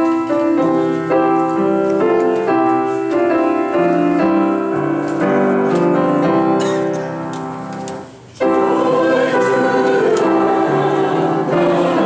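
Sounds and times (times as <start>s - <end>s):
piano accompaniment: 0.0s - 12.0s
congregation singing a hymn: 8.4s - 12.0s.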